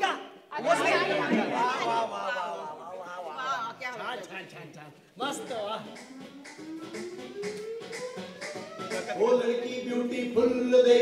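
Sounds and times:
people chattering: 0:00.0 - 0:05.0.

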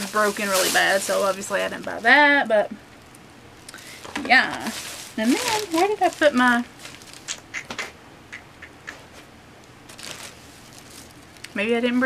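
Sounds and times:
bags and packaging rustling: 0:00.0 - 0:02.6, 0:03.6 - 0:07.4, 0:09.8 - 0:12.0.

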